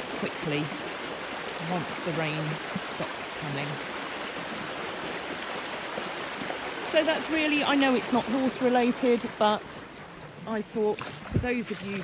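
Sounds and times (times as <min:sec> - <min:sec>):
floodwater rushing: 0:00.0 - 0:12.0.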